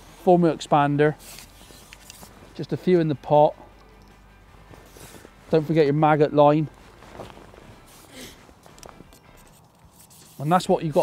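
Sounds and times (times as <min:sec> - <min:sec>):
tackle rustling and clicking: 0:01.3 - 0:02.4.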